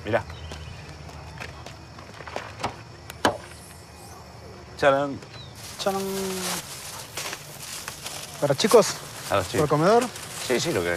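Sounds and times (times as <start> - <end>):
footsteps on dirt road: 0.0 - 3.0, 5.1 - 10.9.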